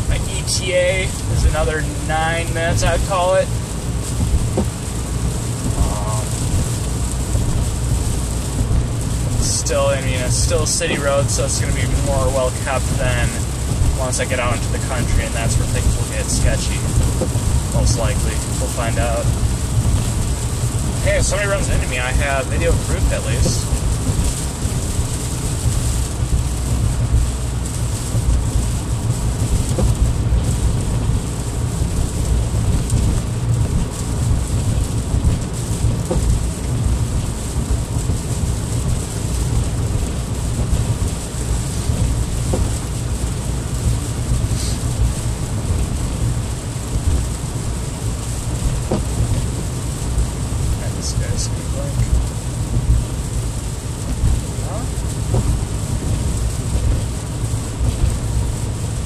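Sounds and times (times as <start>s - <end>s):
low car cabin rumble: 0.0s - 59.0s
rain on windshield: 0.0s - 59.0s
tyres hissing on wet pavement: 0.0s - 59.0s.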